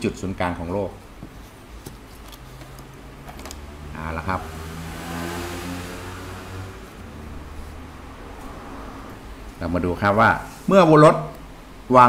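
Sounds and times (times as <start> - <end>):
passing vehicle engine hum: 2.3 - 10.1.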